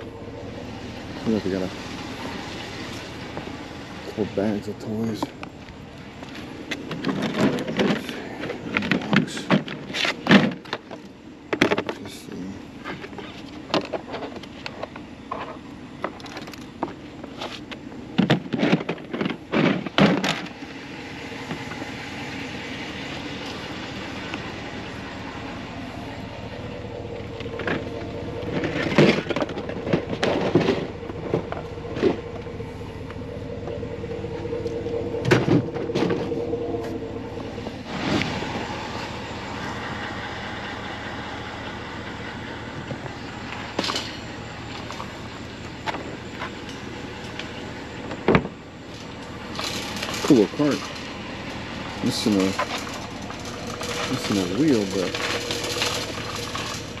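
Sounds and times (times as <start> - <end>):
shopping cart rattling over pavement: 0.0 - 11.0, 15.4 - 41.3, 41.9 - 57.0.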